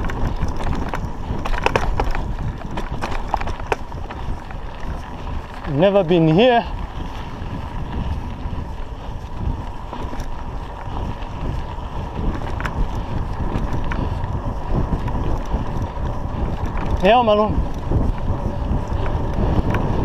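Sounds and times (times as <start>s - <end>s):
bicycle tyres rumbling on dirt: 0.0s - 20.0s
wind buffeting microphone: 0.0s - 20.0s.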